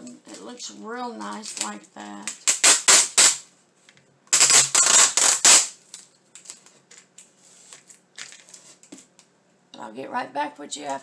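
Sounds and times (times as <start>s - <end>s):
packing tape screeching off roll: 2.4s - 3.4s, 4.3s - 5.8s.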